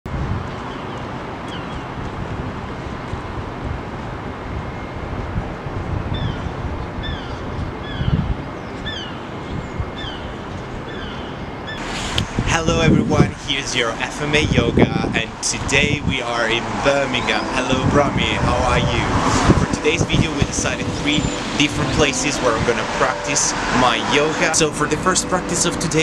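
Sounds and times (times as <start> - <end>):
wind buffeting microphone: 0.1 - 11.1, 11.8 - 23.0
low urban rumble: 0.1 - 26.0.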